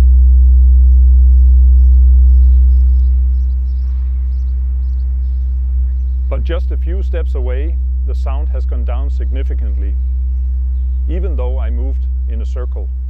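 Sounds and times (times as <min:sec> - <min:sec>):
loud low tone from loudspeaker: 0:00.0 - 0:13.0.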